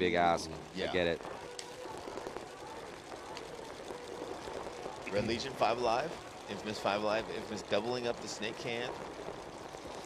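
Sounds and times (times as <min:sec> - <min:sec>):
low noisy haze: 0:00.0 - 0:10.0.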